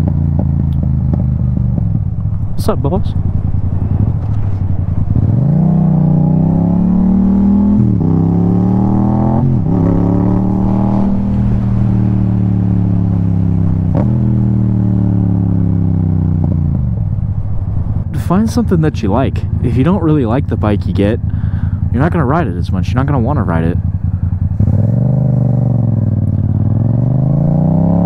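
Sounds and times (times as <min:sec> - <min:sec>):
motorcycle engine accelerating: 0:00.0 - 0:28.0.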